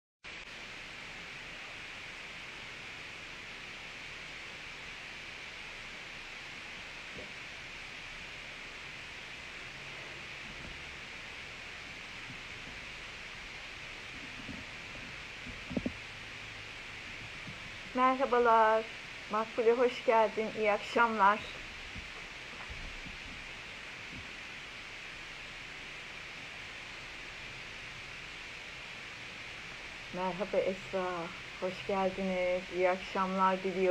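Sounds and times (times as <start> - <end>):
microphone background hiss: 0.3 - 33.9.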